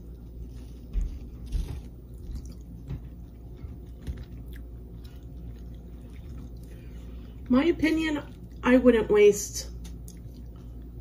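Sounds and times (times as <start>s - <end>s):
person chewing: 0.0s - 7.5s, 9.8s - 11.0s.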